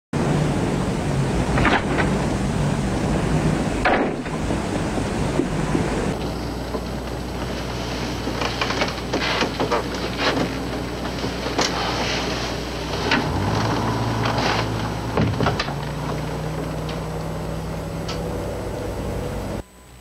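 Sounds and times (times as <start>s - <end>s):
steady rushing noise: 0.2s - 19.6s.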